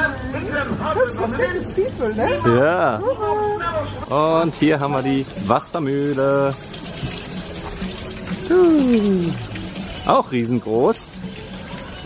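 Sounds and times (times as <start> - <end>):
water splashing onto mill wheel: 4.0 - 12.0.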